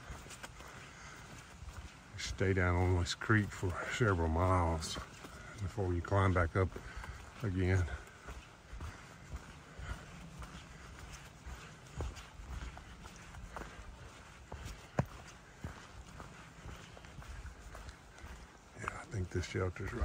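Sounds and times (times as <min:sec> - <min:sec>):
footsteps crunching on leaves: 0:00.0 - 0:20.0.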